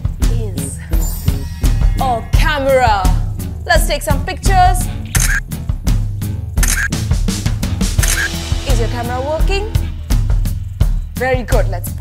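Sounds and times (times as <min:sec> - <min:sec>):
children's music with drum beat: 0:00.0 - 0:12.0
camera shutter click: 0:05.1 - 0:05.4, 0:06.6 - 0:06.9, 0:08.0 - 0:08.4.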